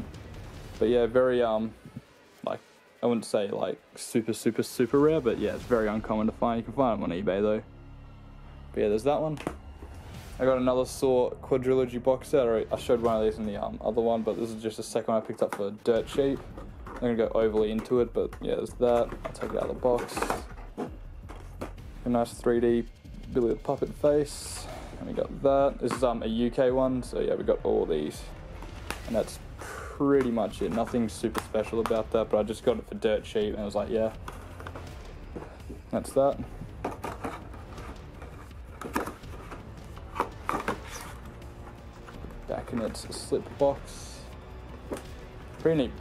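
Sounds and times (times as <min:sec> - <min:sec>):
faint background music: 0:00.0 - 0:46.0
knocks and scrapes of dvd case: 0:09.3 - 0:10.0, 0:12.8 - 0:22.3, 0:23.4 - 0:26.2, 0:27.7 - 0:46.0
case sliding out of cardboard: 0:36.8 - 0:43.4.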